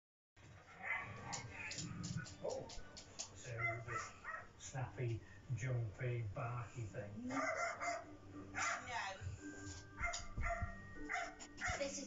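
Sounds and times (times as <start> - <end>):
television music: 0.4 - 12.0
television speech: 0.6 - 12.0
dog barking: 3.5 - 4.5, 7.3 - 9.1, 10.0 - 11.9.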